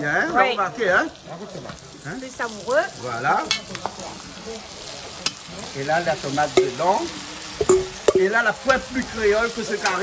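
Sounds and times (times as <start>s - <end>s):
food sizzling in a pot: 0.0s - 10.0s
metal spoon stirring: 7.6s - 9.0s.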